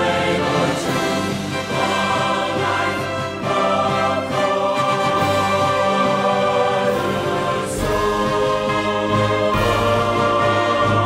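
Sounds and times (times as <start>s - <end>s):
choir singing sustained chords: 0.0s - 11.0s
instrumental accompaniment: 0.0s - 11.0s.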